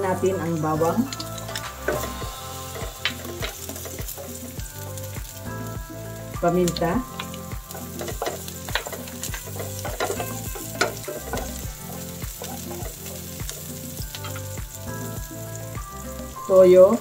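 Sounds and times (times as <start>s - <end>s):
onion and garlic sizzling in oil: 0.0s - 17.0s
wooden spatula scraping a pan: 1.5s - 4.5s, 7.2s - 14.4s.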